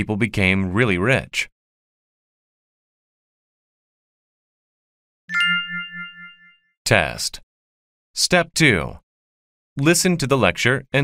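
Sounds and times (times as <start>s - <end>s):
bell-like chime: 5.3s - 6.7s.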